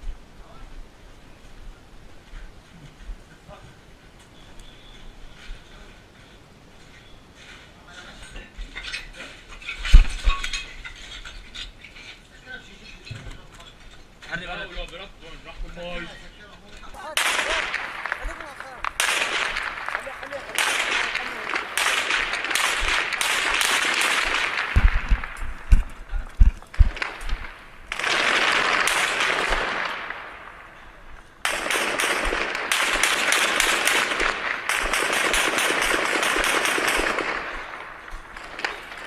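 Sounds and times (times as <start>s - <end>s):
gunshots and bursts: 17.1s - 30.8s, 31.4s - 39.0s
heavy thumps: 24.6s - 27.7s.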